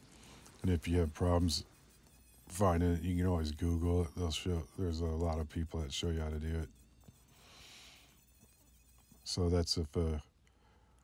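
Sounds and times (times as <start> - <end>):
rotary tool whine: 0.0 - 10.5.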